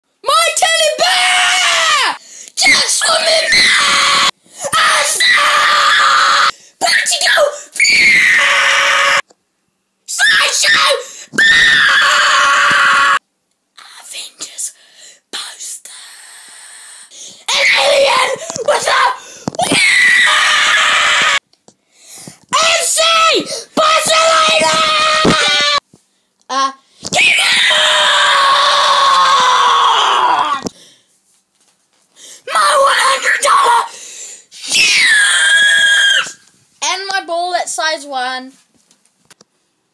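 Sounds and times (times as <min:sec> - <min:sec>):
child screaming: 0:00.3 - 0:09.2, 0:10.1 - 0:13.2, 0:17.5 - 0:21.4, 0:22.6 - 0:25.8, 0:27.2 - 0:30.7, 0:32.5 - 0:34.0, 0:34.6 - 0:36.4.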